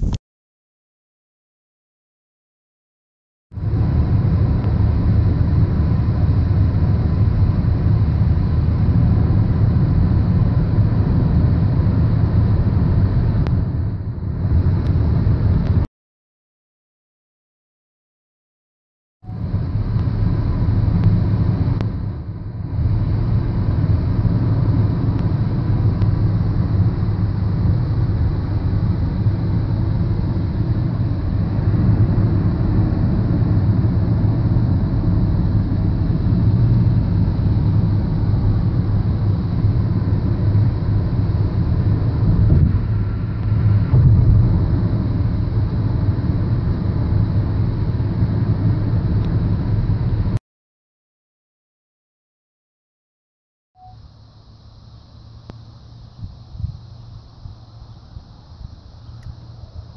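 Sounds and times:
car road and engine noise: 0:03.6 - 0:15.9, 0:19.3 - 0:50.4, 0:53.8 - 0:59.9.

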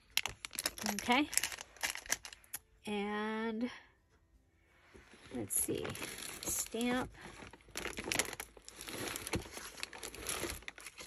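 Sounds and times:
plastic bag crinkling: 0:00.0 - 0:02.6, 0:05.7 - 0:11.0.

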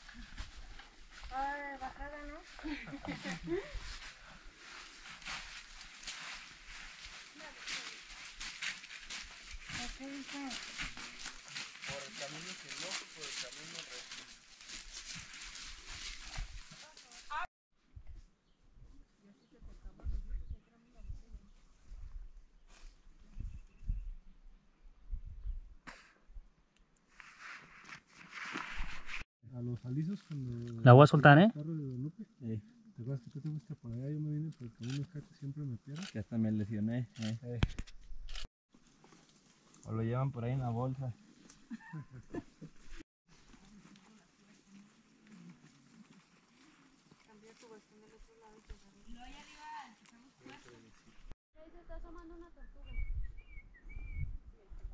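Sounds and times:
footsteps crunching through dry leaves: 0:03.8 - 0:17.5.

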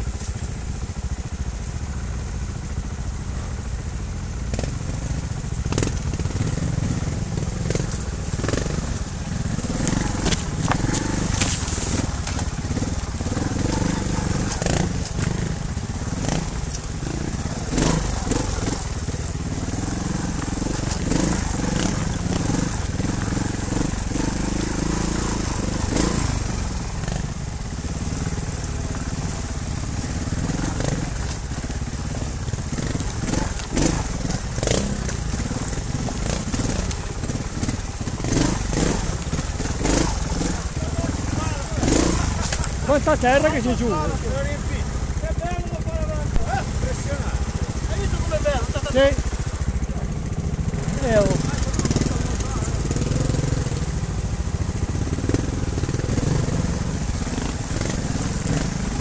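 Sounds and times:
motorcycle engines at low revs: 0:00.0 - 0:59.0
stones knocking under tyres: 0:10.0 - 0:12.8.

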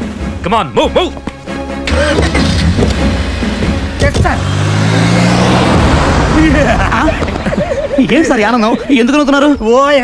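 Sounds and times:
engine pulling away: 0:01.9 - 0:08.7.

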